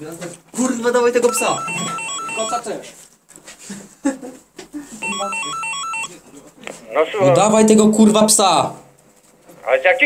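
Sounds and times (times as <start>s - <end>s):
intercom beeping tune: 1.2s - 2.7s, 5.0s - 6.1s.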